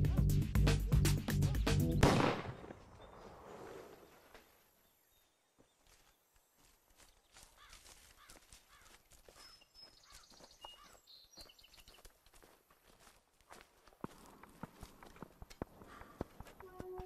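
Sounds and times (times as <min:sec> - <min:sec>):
rhythmic background music: 0:00.0 - 0:02.0
faint footsteps on dry ground: 0:02.6 - 0:17.0
birds calling: 0:07.0 - 0:12.2.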